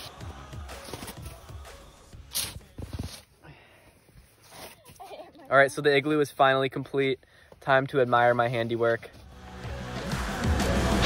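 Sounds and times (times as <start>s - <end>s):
snow shovel scraping snow: 0.0s - 1.3s, 2.3s - 3.3s.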